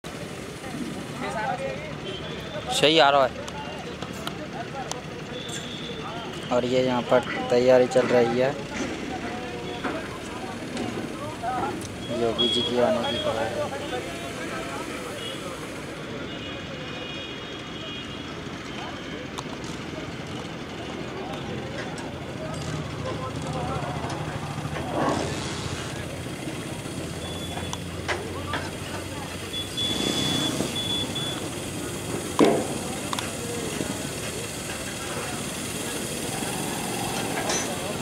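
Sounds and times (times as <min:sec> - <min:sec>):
faint voices talking: 0:00.0 - 0:38.0.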